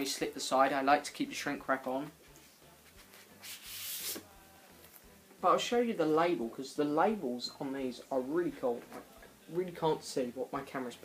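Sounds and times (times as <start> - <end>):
record sliding out of sleeve: 3.4 - 4.3.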